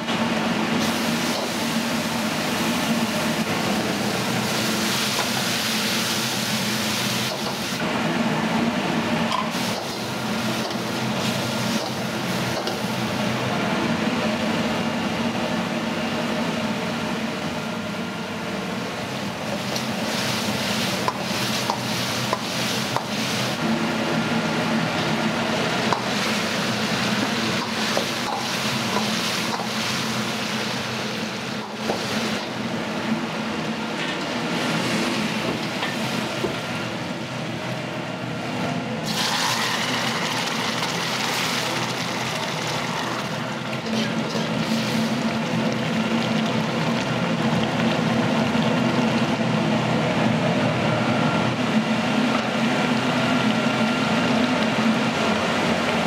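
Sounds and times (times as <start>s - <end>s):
gas burners and exhaust hood roaring: 0.0s - 56.0s.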